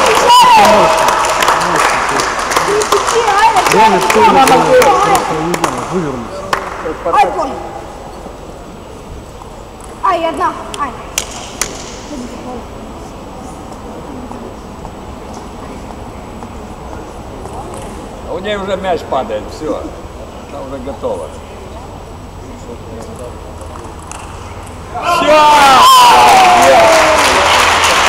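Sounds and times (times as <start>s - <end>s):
murmur of spectators: 0.0s - 28.0s.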